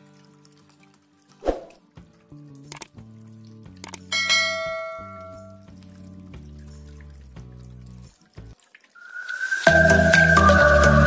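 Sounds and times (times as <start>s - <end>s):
soft background music: 0.0s - 8.8s, 9.4s - 11.0s
click: 2.7s - 2.9s
bright bell chime: 4.1s - 5.6s.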